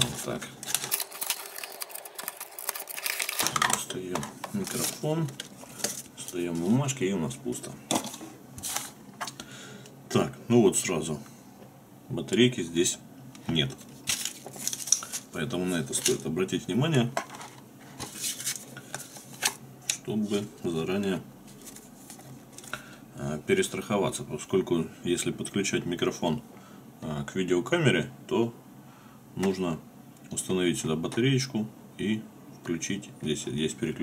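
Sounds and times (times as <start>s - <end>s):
paper rustle: 0.0s - 6.8s, 8.0s - 9.0s, 13.7s - 16.3s, 17.4s - 19.6s, 21.5s - 22.8s.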